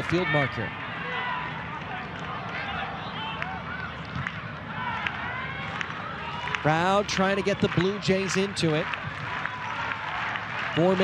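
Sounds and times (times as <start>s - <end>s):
players shouting: 0.0s - 11.0s.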